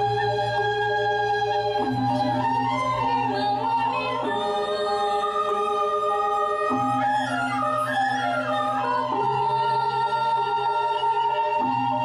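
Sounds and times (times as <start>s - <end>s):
gamelan music long held notes: 0.0s - 12.0s.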